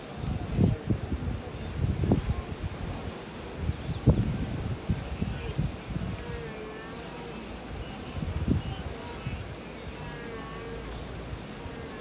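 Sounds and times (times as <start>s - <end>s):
wind buffeting microphone: 0.0s - 6.6s, 7.6s - 12.0s
steady noisy haze: 0.0s - 12.0s
faint drawn-out calls: 6.2s - 12.0s.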